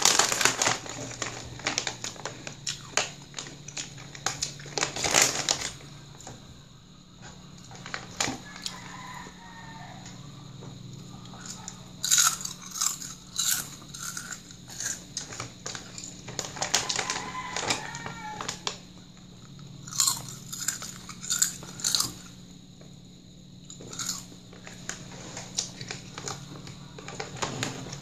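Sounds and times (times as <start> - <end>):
potato chips crunching: 0.0 - 6.3, 11.2 - 18.8, 19.5 - 22.4, 23.7 - 28.0.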